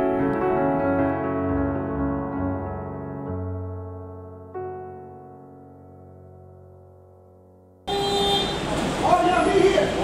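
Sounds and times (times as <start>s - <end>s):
soft piano music: 0.0s - 7.9s
car horn: 7.9s - 8.8s.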